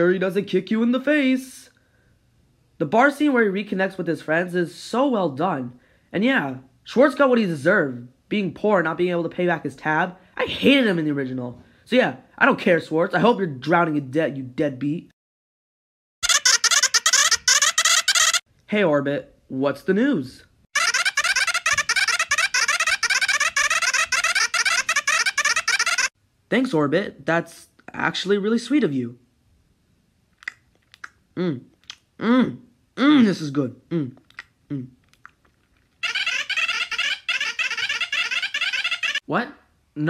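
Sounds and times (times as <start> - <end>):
squeaky cartoon voice gibberish: 16.2 - 18.4, 20.8 - 26.1, 36.0 - 39.3.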